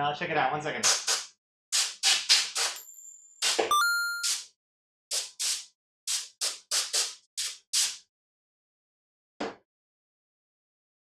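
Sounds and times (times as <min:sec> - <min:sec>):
ringing chime: 0:02.8 - 0:04.3
high electronic beep: 0:03.7 - 0:04.3.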